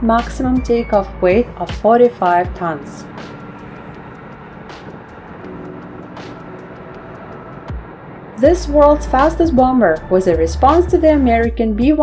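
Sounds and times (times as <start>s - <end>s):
jet engines rumbling: 0.0s - 11.4s
background music chords: 0.0s - 12.0s.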